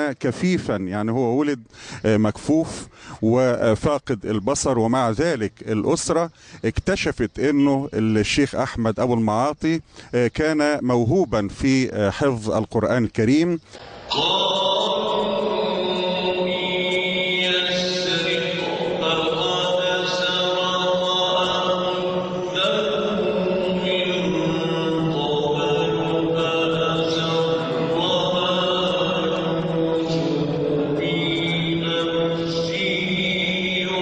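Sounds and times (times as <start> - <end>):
man chanting into a microphone: 0.0 - 34.0.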